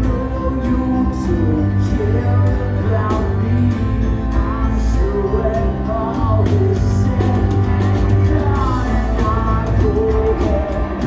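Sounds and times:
drums: 0.0s - 11.0s
electric guitar: 0.0s - 11.0s
piano: 0.0s - 11.0s
rock band playing live: 0.0s - 11.0s.

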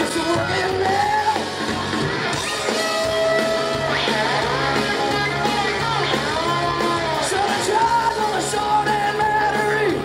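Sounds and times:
live hard rock band: 0.0s - 10.0s.

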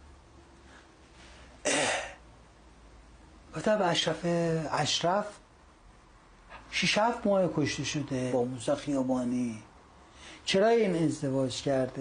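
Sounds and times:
man clearing his throat: 1.6s - 2.2s.

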